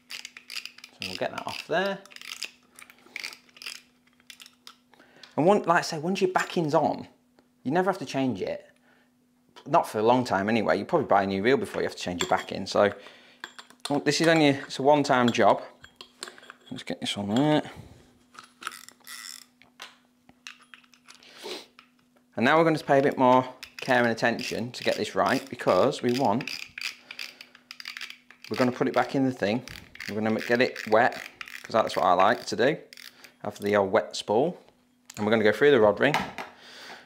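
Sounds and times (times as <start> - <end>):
fishing reel clicking and rattling: 0.0 - 4.8, 18.6 - 19.5, 23.6 - 33.4
small clicks of reel spool: 26.1 - 29.0, 29.7 - 31.7, 32.3 - 33.2.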